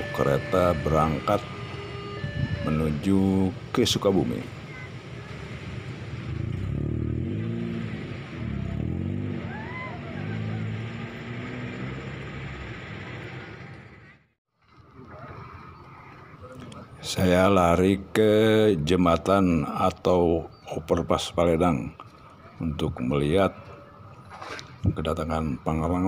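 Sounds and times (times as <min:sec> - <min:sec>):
cars driving past: 0:00.0 - 0:17.2.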